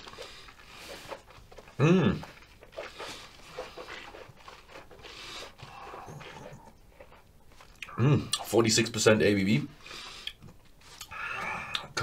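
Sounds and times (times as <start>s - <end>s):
soft breathing: 2.3s - 7.2s
wet lip and tongue clicks: 10.2s - 11.1s.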